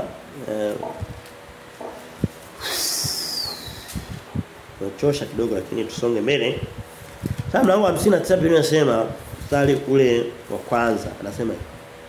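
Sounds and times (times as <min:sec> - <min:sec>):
man's breathy whistling exhale: 0:02.6 - 0:04.2.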